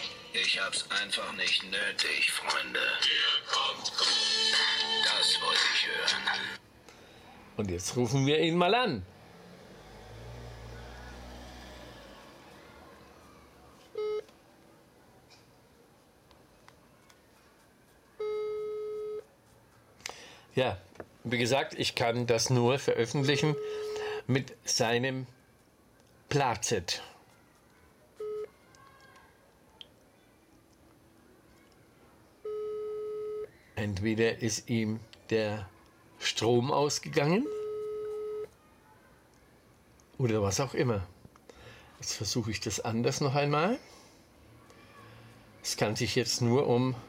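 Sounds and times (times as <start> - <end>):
phone ringing tone: 14.0 - 14.2, 18.2 - 19.2, 23.4 - 24.0, 28.2 - 28.5, 32.4 - 33.6, 37.4 - 38.5
short electronic beep: 14.0 - 14.2.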